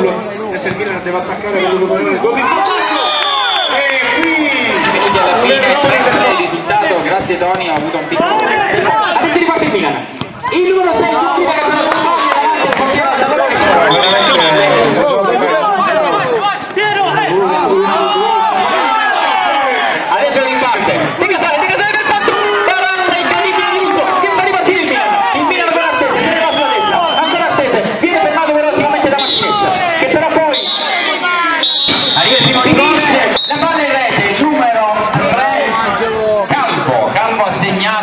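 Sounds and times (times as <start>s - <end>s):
crowd talking and shouting: 0.0s - 38.0s.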